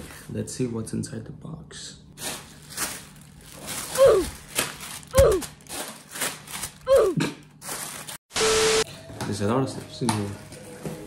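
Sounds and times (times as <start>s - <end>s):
cardboard rustling and tearing: 2.2s - 7.0s, 7.6s - 8.2s
held tone: 8.4s - 8.8s.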